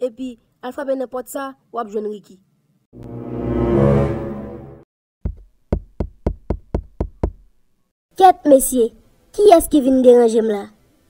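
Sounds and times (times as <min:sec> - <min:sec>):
short musical sting: 0:03.0 - 0:04.8
knocking on a door: 0:05.2 - 0:07.5.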